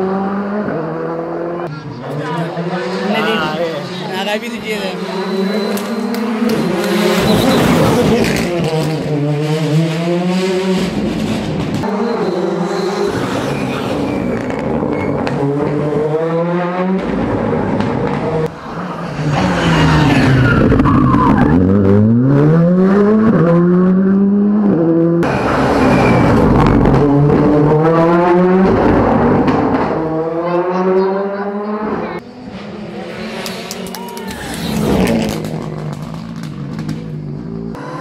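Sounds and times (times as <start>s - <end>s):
rally car engines revving: 0.0s - 38.0s.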